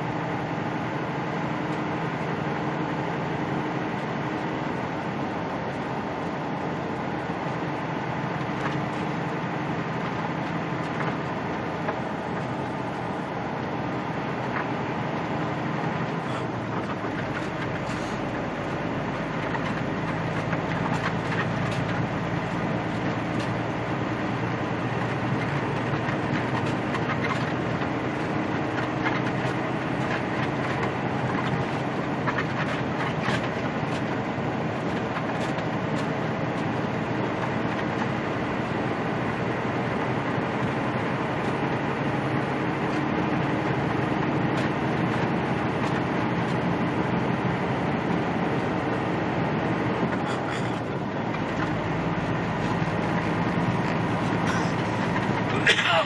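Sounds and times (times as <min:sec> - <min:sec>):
diesel engine droning: 0:00.0 - 0:56.0
tyres on road: 0:00.0 - 0:56.0.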